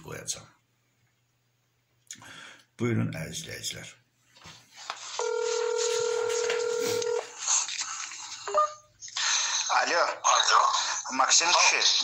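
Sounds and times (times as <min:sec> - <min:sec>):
phone ringback tone: 0:05.2 - 0:07.4
person speaking on phone: 0:09.6 - 0:12.0.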